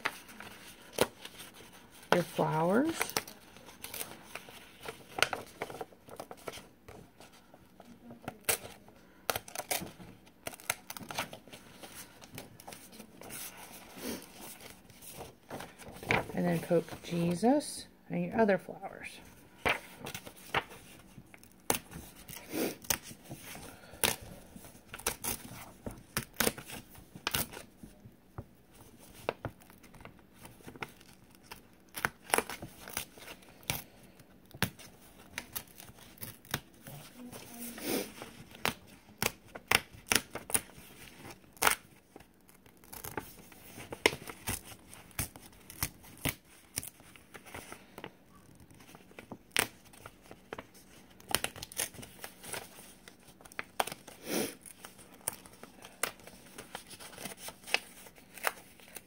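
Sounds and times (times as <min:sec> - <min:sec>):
paper popping tearing and rustling: 0:08.2 - 0:17.2, 0:19.6 - 0:27.8, 0:29.0 - 0:59.0.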